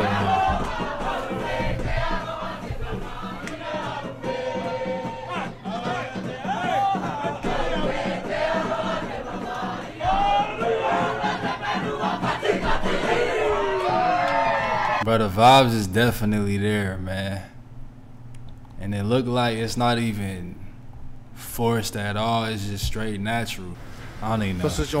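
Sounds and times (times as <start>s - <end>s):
repeating drum beat: 0.0s - 14.1s
crowd singing along: 0.0s - 15.0s.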